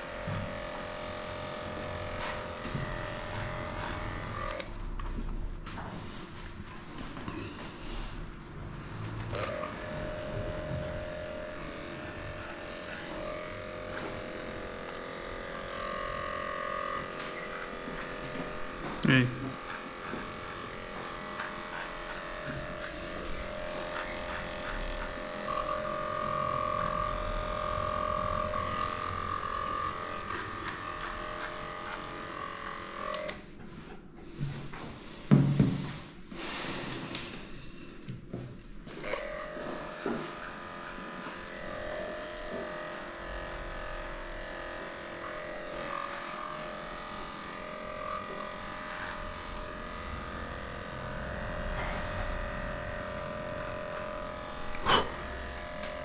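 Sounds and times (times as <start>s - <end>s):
electric dog clipper running: 0.0s - 5.3s, 8.6s - 33.5s, 38.6s - 56.0s.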